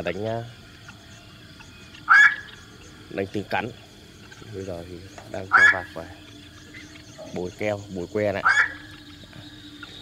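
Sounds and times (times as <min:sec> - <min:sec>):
heron harsh call: 0:02.0 - 0:02.6, 0:05.4 - 0:06.0, 0:08.4 - 0:08.9.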